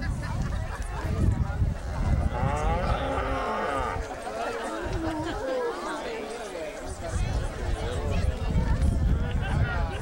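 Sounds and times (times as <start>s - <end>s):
people talking: 0.0s - 10.0s
cow mooing: 2.3s - 4.0s.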